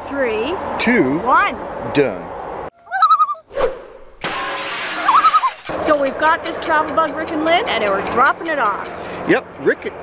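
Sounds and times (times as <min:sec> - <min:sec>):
whoosh: 0:03.5 - 0:05.2
alarm clock bell ringing: 0:05.6 - 0:09.2.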